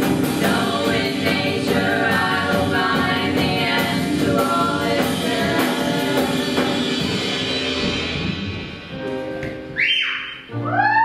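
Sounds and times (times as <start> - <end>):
live band closing chord: 2.2 - 10.6
piercing whistle from audience: 9.8 - 10.4.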